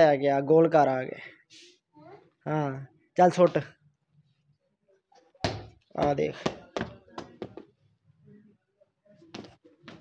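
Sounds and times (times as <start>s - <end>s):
football thudding on stone floor: 5.4s - 7.7s.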